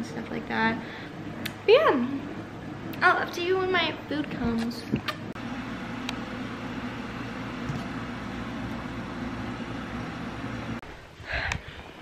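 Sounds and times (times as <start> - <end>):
low motor hum: 2.0 - 10.8.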